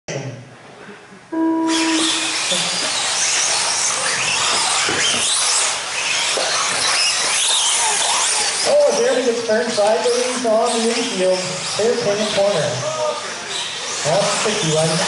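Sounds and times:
electronic start tone: 0:01.4 - 0:03.0
rc car motors whining: 0:01.7 - 0:15.0.

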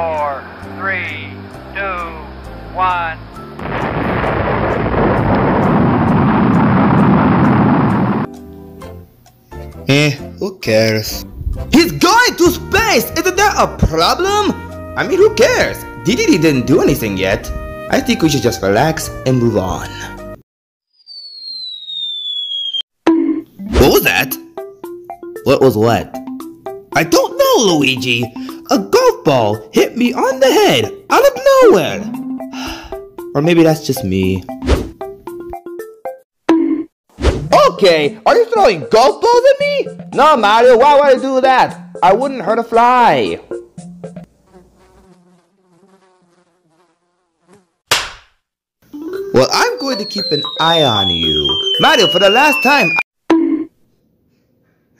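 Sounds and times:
loud hit: 0:03.6 - 0:08.3
housefly buzzing: 0:20.9 - 0:22.8, 0:44.0 - 0:47.9
cartoon falling whistle: 0:20.9 - 0:22.9, 0:49.2 - 0:53.0
golf ball hitting head: 0:47.9 - 0:48.4.

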